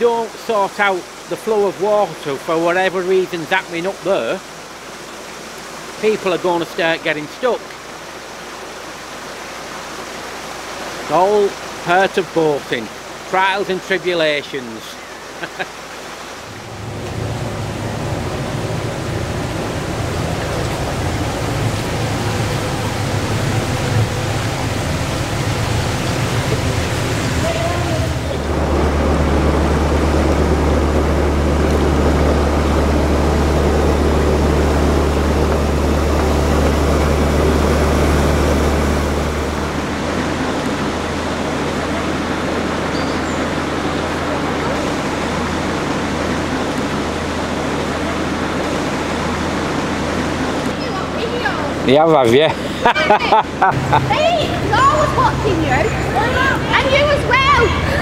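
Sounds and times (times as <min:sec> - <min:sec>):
boat engine running: 0:00.0 - 0:58.0
water rushing hiss: 0:00.0 - 0:58.0
water spilling into canal: 0:00.0 - 0:58.0.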